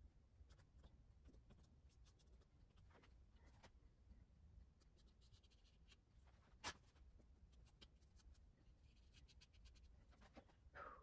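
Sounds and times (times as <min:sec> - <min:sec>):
pastel stick scratching on paper: 0:00.4 - 0:03.0, 0:04.8 - 0:06.0, 0:07.5 - 0:10.2.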